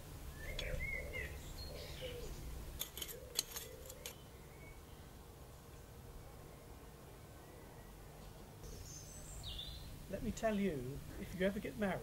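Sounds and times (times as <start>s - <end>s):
garden birds chirping: 0.0s - 12.0s.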